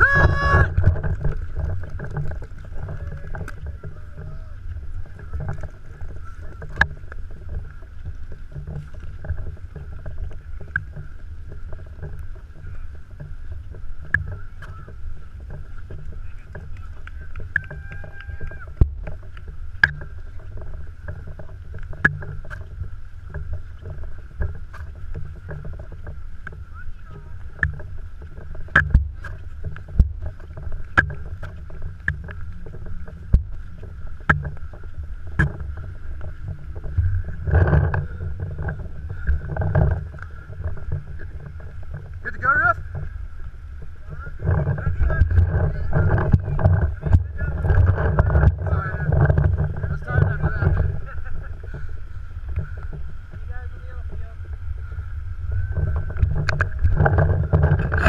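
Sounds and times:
wind noise: 0.0s - 58.0s.

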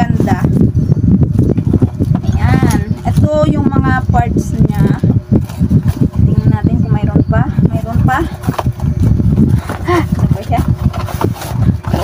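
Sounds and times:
woman talking: 0.0s - 0.6s, 2.2s - 5.2s, 6.1s - 8.6s, 9.7s - 10.9s.

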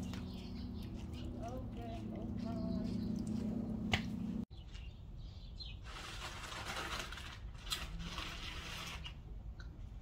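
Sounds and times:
rustling of plants handled by hand: 5.8s - 9.2s.

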